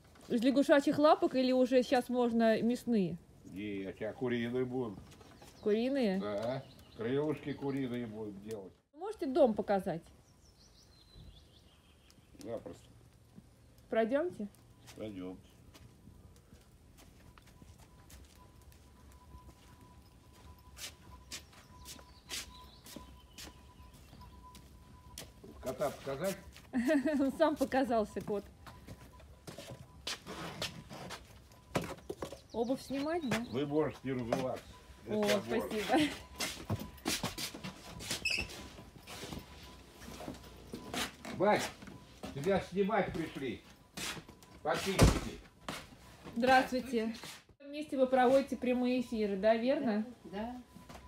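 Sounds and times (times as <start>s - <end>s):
footsteps on gravel: 14.8s - 31.5s, 32.1s - 45.0s
rustling of shoes and clothing: 20.4s - 24.4s, 34.4s - 47.6s
brief high squeak: 38.2s - 38.6s.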